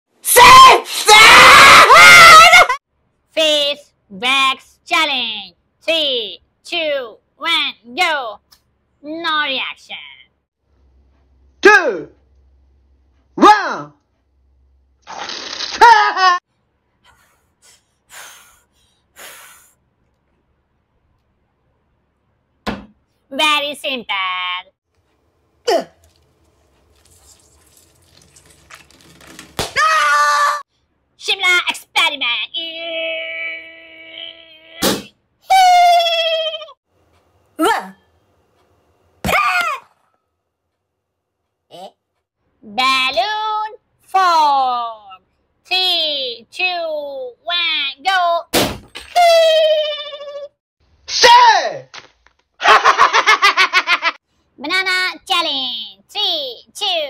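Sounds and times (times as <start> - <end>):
person yelling: 0.3 - 2.8, 51.1 - 51.8
noisy inhale through straws: 17.1 - 19.8
rustling and squeaking of balloon: 26.0 - 29.8
tape ripping: 26.0 - 29.8
balloon bursting pop: 34.8 - 35.2.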